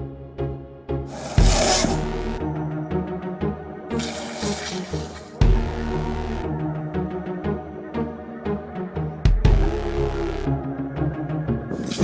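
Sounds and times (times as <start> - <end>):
longboard wheels scraping asphalt: 1.1 - 2.1.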